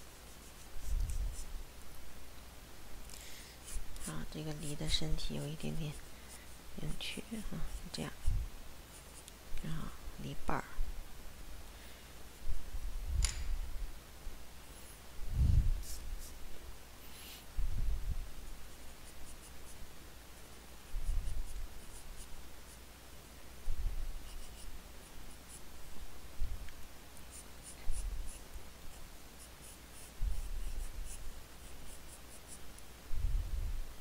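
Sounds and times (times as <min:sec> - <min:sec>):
pencil scratching on paper: 0:00.3 - 0:01.5, 0:03.6 - 0:08.3, 0:15.8 - 0:16.4, 0:18.7 - 0:19.8, 0:20.9 - 0:22.8, 0:24.2 - 0:24.7, 0:27.2 - 0:32.6.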